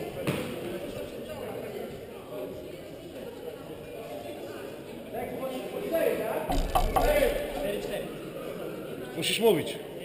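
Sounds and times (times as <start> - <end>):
low background voices: 0.0 - 10.0.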